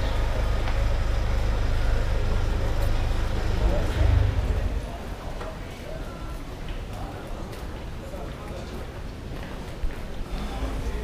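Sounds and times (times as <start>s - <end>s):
low rumble: 0.0s - 5.3s
people talking: 0.0s - 11.0s.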